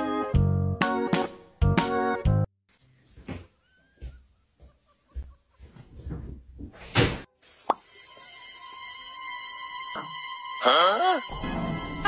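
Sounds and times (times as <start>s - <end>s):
background music: 0.0s - 2.5s, 7.7s - 12.0s
soft thumps and rustles: 5.1s - 7.2s.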